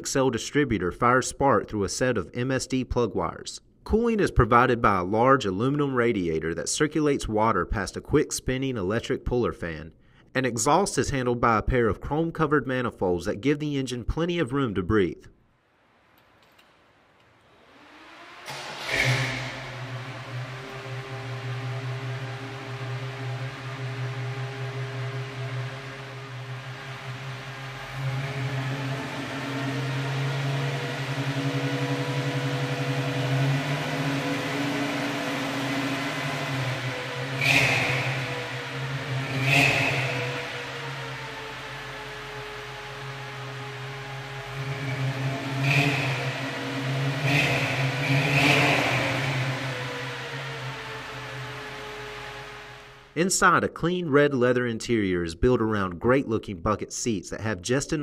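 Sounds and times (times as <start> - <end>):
engine throttle blips: 16.1 - 53.3
car engine idling: 16.4 - 53.2.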